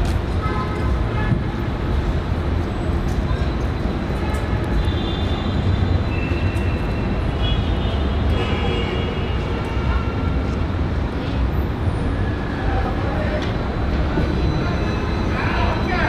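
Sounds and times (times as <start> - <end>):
low rumble of tram: 0.0 - 16.0
street traffic: 0.0 - 16.0.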